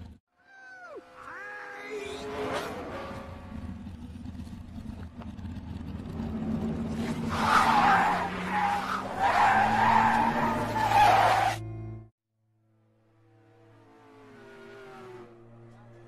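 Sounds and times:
tire skidding and squeal: 1.2s - 11.6s
low engine rumble: 3.3s - 7.1s.

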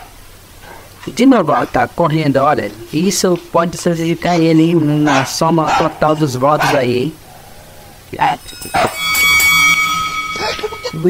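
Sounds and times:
dog barks: 1.5s - 1.8s, 4.3s - 7.0s
ringing tone: 8.4s - 11.0s.

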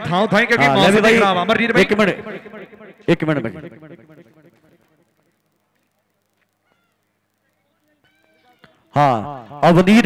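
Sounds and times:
faint high chirp: 6.6s - 8.8s.

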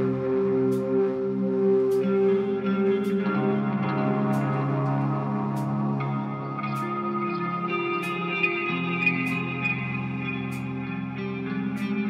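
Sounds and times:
electric guitar ringing chords: 0.0s - 12.0s.

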